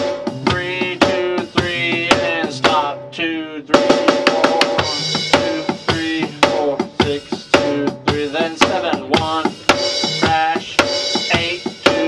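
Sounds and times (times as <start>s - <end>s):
backing track music: 0.0s - 12.0s
electronic drum kit rock beat: 0.0s - 12.0s.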